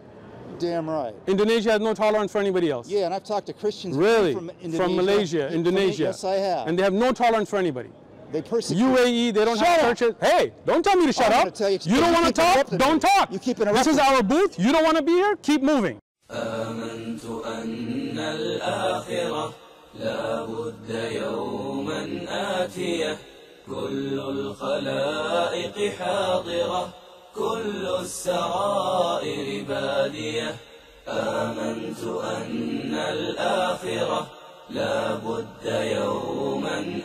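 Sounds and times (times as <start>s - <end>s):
person chanting verse: 16.3s - 37.0s.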